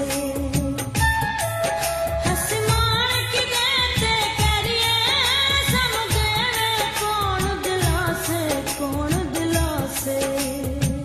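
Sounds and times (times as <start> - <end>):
percussion beat: 0.0 - 11.0
woman singing: 0.0 - 11.0.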